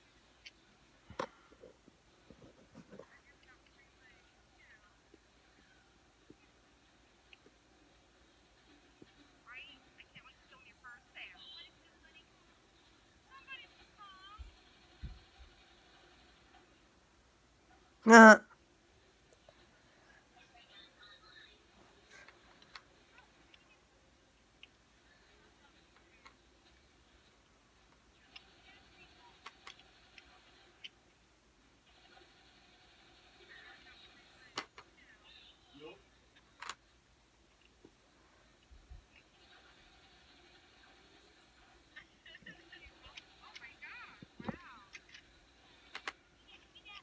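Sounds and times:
faint voices through laptop speakers: 0.0 - 17.0, 17.6 - 47.0.

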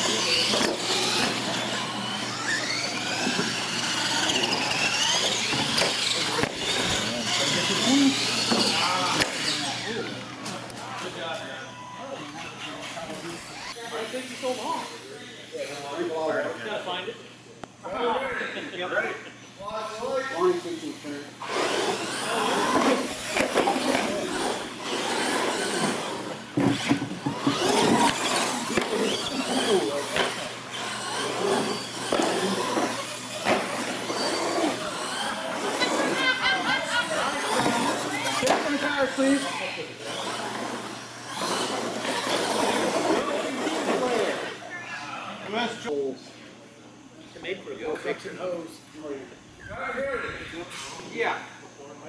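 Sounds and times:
toy truck motors whining: 0.0 - 16.9, 19.6 - 45.0
people talking: 0.0 - 52.0.

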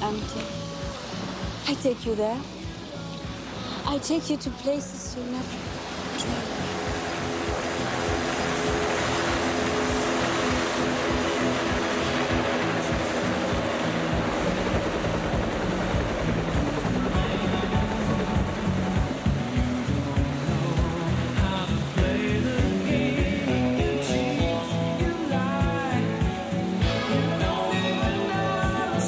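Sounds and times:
synth-pop song: 0.0 - 29.0
helicopter rotor blades chopping: 5.5 - 29.0.

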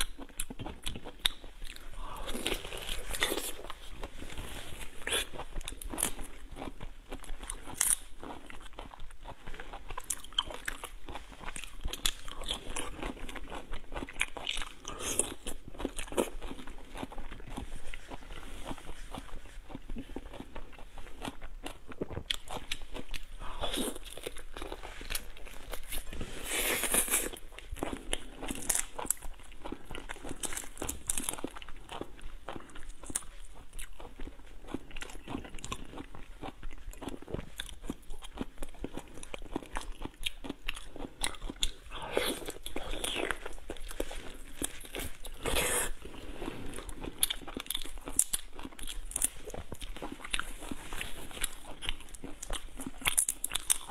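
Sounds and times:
chewing: 0.0 - 53.9.

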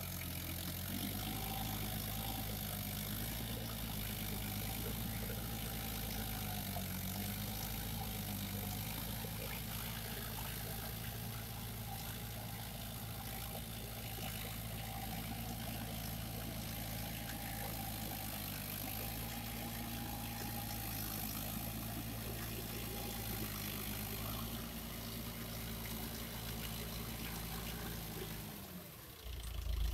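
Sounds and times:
tractor diesel engine running: 0.0 - 29.9.

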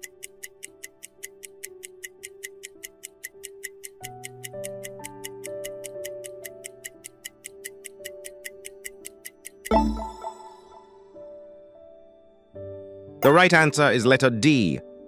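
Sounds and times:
clock-like timer ticking: 0.0 - 10.8
soft background music: 0.0 - 15.0.

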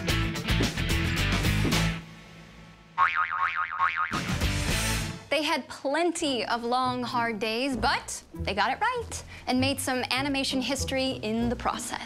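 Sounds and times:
backing music: 0.0 - 2.2, 4.1 - 5.3
comic boing sound effect: 3.0 - 4.3.

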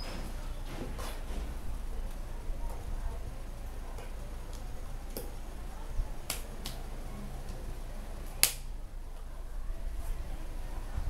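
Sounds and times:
low steady hum: 0.0 - 11.0
hands clapping: 6.3 - 6.8.

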